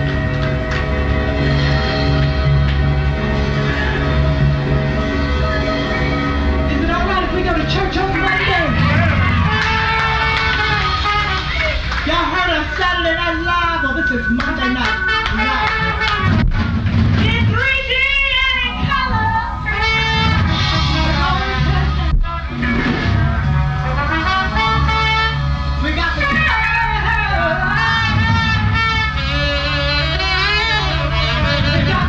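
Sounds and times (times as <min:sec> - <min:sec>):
live jazz band playing: 0:00.0 - 0:17.6, 0:18.3 - 0:32.0.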